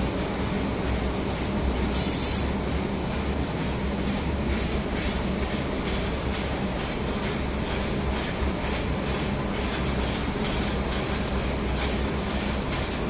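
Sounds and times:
production line machinery hum: 0.0 - 13.0.

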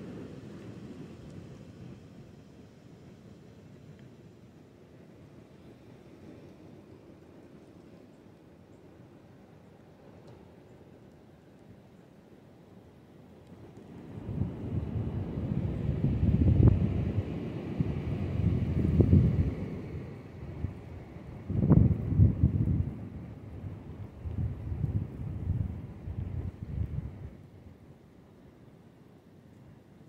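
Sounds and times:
wind buffeting microphone: 13.9 - 27.6.

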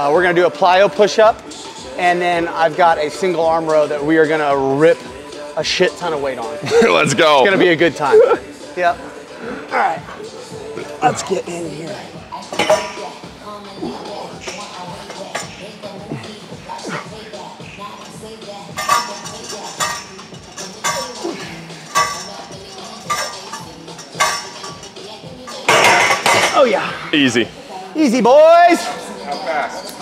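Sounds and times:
weight plates clinking and rattling: 18.7 - 26.6.

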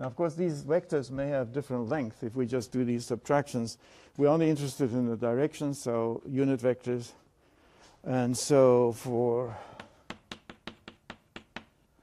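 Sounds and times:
chalk tapping on blackboard: 9.8 - 11.9.

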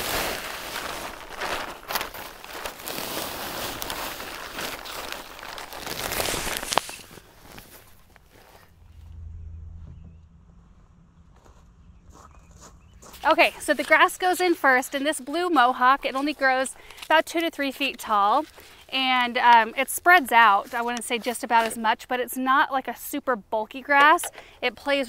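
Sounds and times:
plastic bag crinkling: 0.0 - 8.8
faint low hum: 8.1 - 13.7.

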